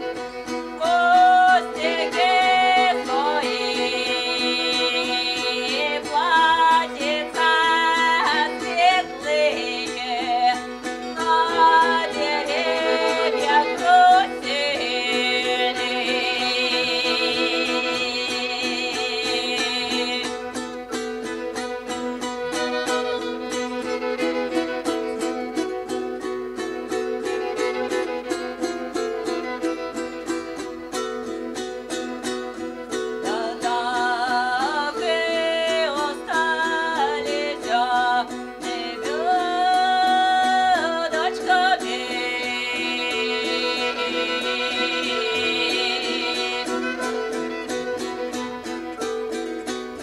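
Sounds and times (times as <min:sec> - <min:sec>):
plucked strings strumming chords: 0:00.0 - 0:50.0.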